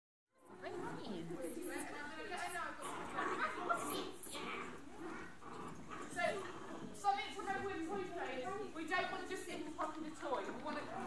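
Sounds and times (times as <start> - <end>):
dog vocalising: 0.5 - 11.0
indistinct voices echoing: 0.5 - 11.0.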